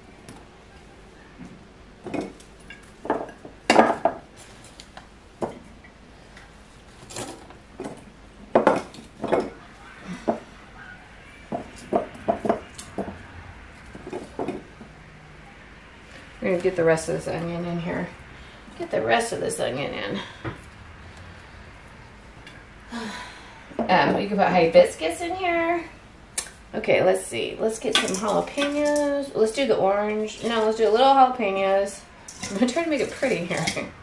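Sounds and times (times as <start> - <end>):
glass jars clinking: 8.6 - 9.6.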